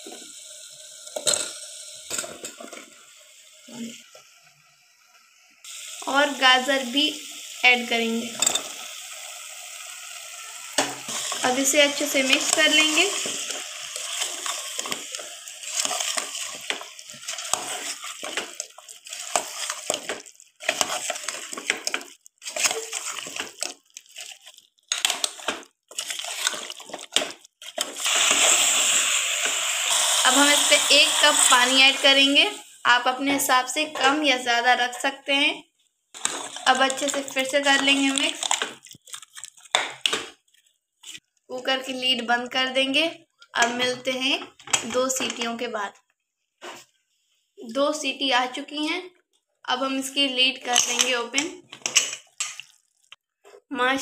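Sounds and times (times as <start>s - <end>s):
food sizzling in pressure cooker: 0.0s - 38.9s, 49.8s - 53.0s
metal spoon scraping a pot: 10.7s - 31.0s, 36.2s - 39.8s.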